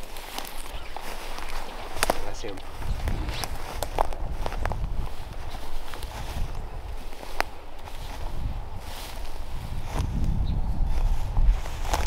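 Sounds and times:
footsteps crunching dry leaves: 0:00.0 - 0:12.0
steady low rumble: 0:02.6 - 0:07.0.

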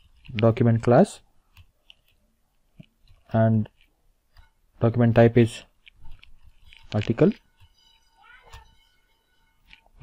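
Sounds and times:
faint electrical whine: 0:00.0 - 0:10.0
faint wavering cry: 0:07.8 - 0:09.6.

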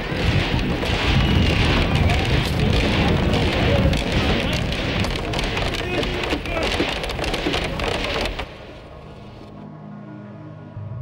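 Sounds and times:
dense crackling rushing noise: 0:00.0 - 0:09.6
faint low sustained music: 0:08.8 - 0:11.0.

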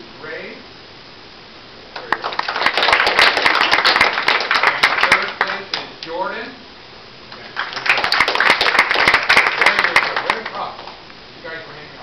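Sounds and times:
small group applauding: 0:01.9 - 0:06.0, 0:07.3 - 0:11.0.

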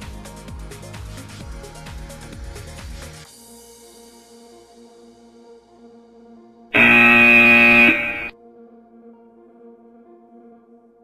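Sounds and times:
electronic timer buzzer tone: 0:06.8 - 0:08.3.

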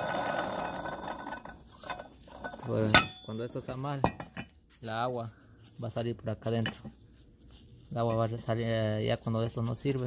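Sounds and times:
water pump bearing rattling and grinding: 0:00.0 - 0:03.3.

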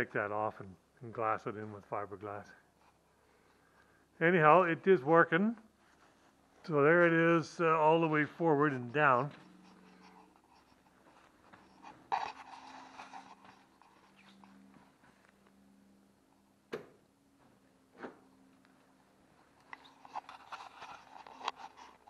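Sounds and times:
faint steady hum: 0:00.0 - 0:22.0
rustling and handling noises: 0:05.1 - 0:15.9, 0:17.3 - 0:22.0.

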